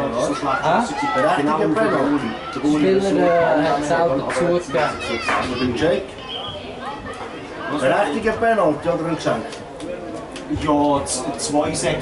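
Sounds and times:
children shouting: 0:00.0 - 0:03.8, 0:04.6 - 0:07.9
people talking: 0:00.0 - 0:12.0.

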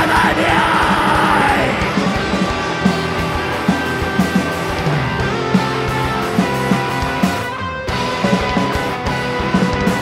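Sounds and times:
electric guitars ringing: 0:00.0 - 0:10.0.

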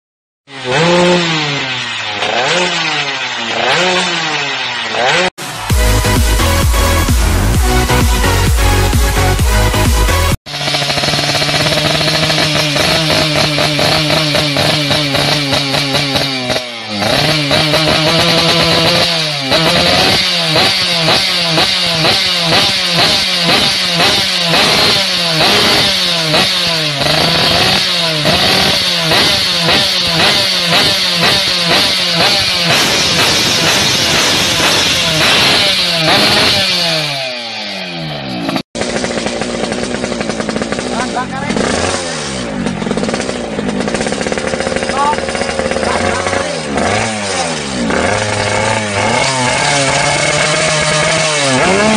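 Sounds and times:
two-stroke motorcycle engine revving: 0:00.4 - 0:51.9
intro music: 0:05.0 - 0:10.4.

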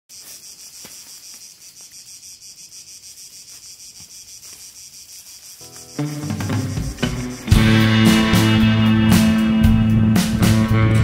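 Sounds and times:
cicadas singing: 0:00.1 - 0:11.0.

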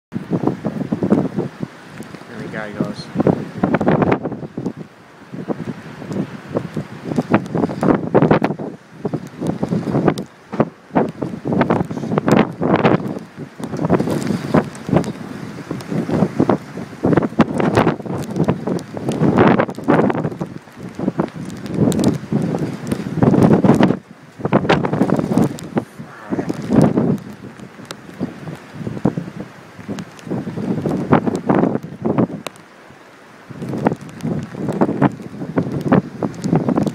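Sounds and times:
wind buffeting microphone: 0:00.1 - 0:32.6, 0:33.4 - 0:36.9.

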